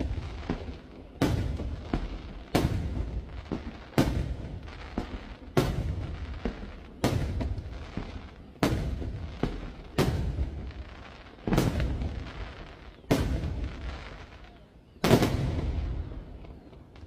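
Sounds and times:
firework shells booming: 0:00.0 - 0:10.8, 0:11.4 - 0:14.2, 0:15.0 - 0:16.7.

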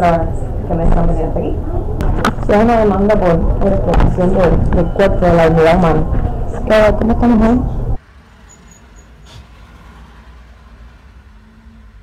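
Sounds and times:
street traffic rumble: 0:00.0 - 0:12.0
cars passing: 0:05.3 - 0:12.0.

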